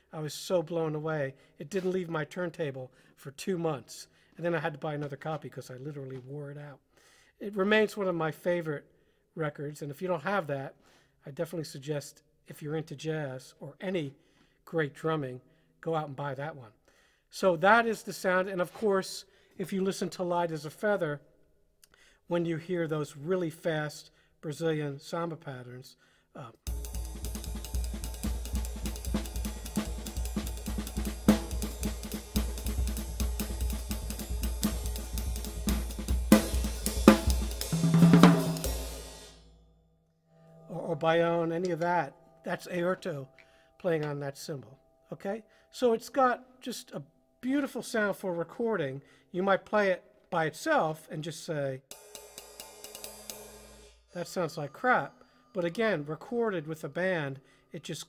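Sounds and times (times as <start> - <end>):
bass drum pulse: 26.7 - 38.9
drum kit samba pattern: 26.7 - 39.4, 51.9 - 54.0
ride cymbal: 26.7 - 39.5, 51.9 - 54.1.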